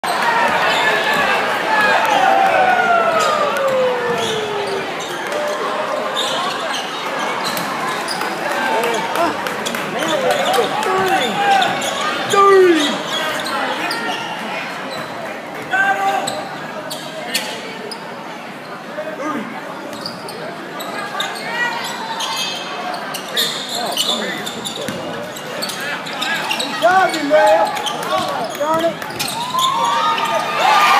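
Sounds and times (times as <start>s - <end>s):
crowd chatter and shouts: 0.0s - 30.9s
voices of players and spectators: 0.0s - 30.9s
sneaker squeaks: 3.2s - 15.2s, 16.0s - 18.1s, 19.8s - 30.5s
shoe squeaks on court: 19.9s - 30.4s.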